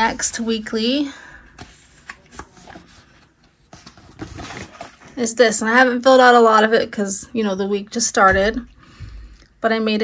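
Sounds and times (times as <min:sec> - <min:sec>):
paper pages rustling: 0:01.5 - 0:05.2.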